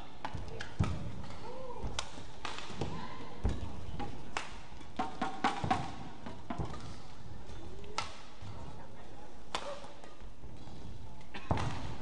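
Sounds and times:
low hall noise: 0:00.0 - 0:12.0.

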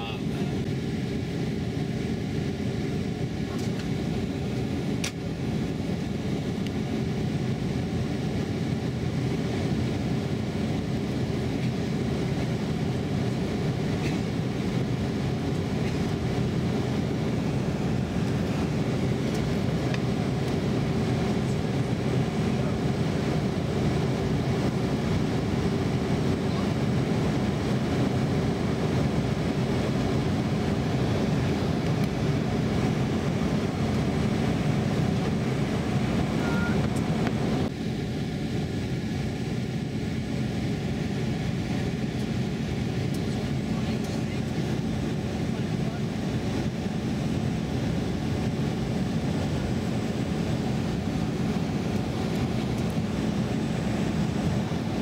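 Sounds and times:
jet engine and airflow rush: 0:00.0 - 0:55.0.

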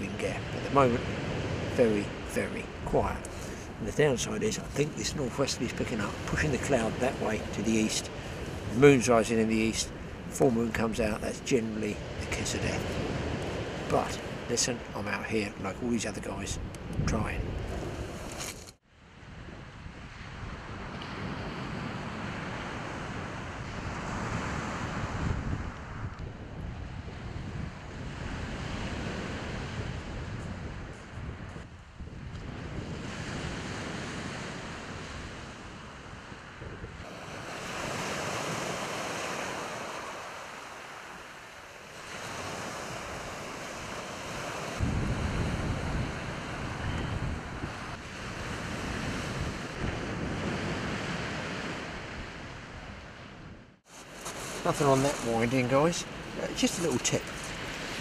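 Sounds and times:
surf breaking on shingle beach: 0:00.0 - 0:15.6, 0:37.0 - 0:52.4, 0:53.9 - 0:58.0
wind buffeting microphone: 0:00.0 - 0:18.6, 0:19.2 - 0:58.0.

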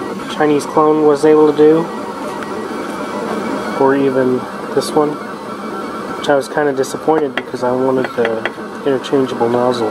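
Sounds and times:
printer motors and fan whirring: 0:00.0 - 0:09.9
man talking: 0:00.3 - 0:01.9, 0:03.8 - 0:05.2, 0:06.2 - 0:09.9.

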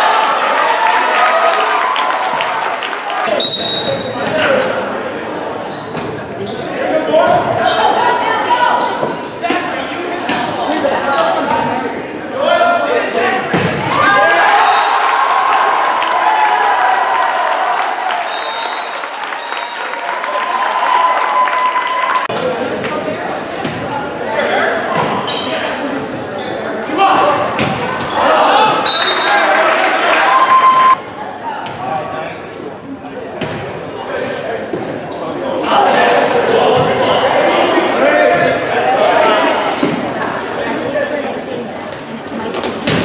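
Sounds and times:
people shouting and cheering: 0:00.0 - 0:04.9, 0:06.8 - 0:22.6, 0:26.8 - 0:31.0
shoe squeaks on court: 0:05.6 - 0:06.8, 0:10.3 - 0:11.7, 0:26.4 - 0:26.7, 0:34.4 - 0:35.5, 0:36.2 - 0:37.3, 0:41.8 - 0:42.8.

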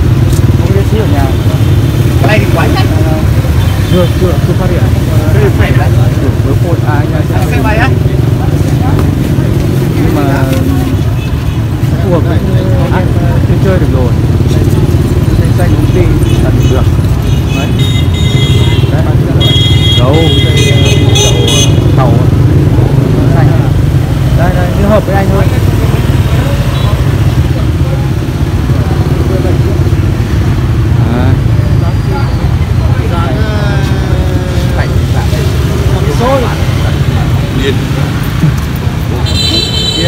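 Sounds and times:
motorbike engines rumbling: 0:00.0 - 0:40.0
people talking: 0:00.6 - 0:01.6, 0:02.2 - 0:11.1, 0:11.8 - 0:17.8, 0:18.8 - 0:30.0, 0:30.9 - 0:40.0
vehicle horn honking: 0:16.3 - 0:22.0, 0:39.2 - 0:40.0.

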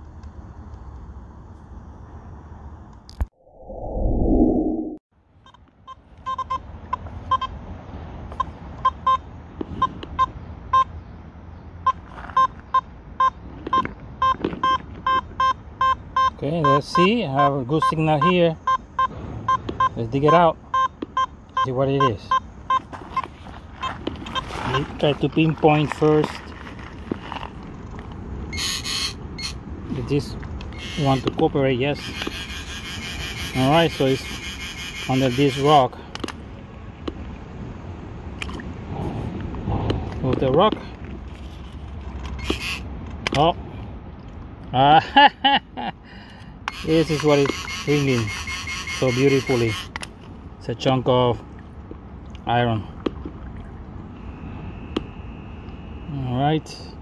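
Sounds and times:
loud rush of noise: 0:03.3 - 0:05.0
metal detector short beeps: 0:12.4 - 0:22.8.

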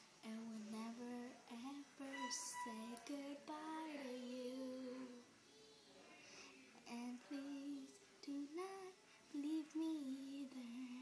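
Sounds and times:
girl singing without words: 0:00.2 - 0:05.9, 0:06.8 - 0:11.0.

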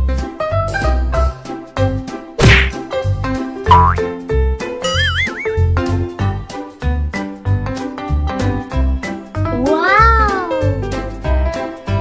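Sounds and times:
upbeat children's music: 0:00.0 - 0:12.0
loud whack sound effect: 0:02.4 - 0:02.8.

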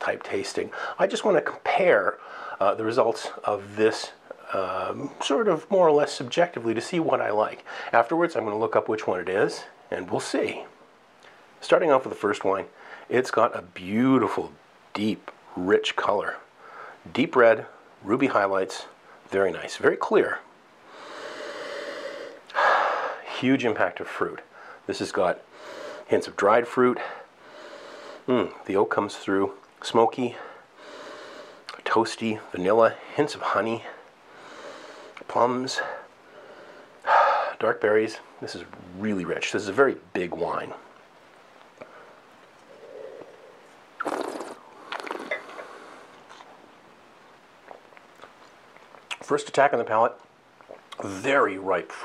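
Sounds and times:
breath out: 0:20.9 - 0:23.2
mouth clicks: 0:42.5 - 0:46.6, 0:47.6 - 0:49.3, 0:50.2 - 0:51.1
person slurping wine: 0:42.7 - 0:46.6.

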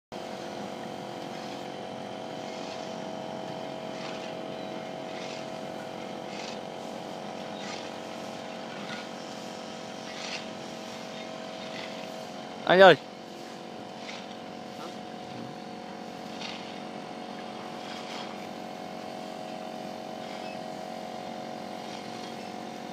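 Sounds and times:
gate motor humming: 0:00.2 - 0:22.9.

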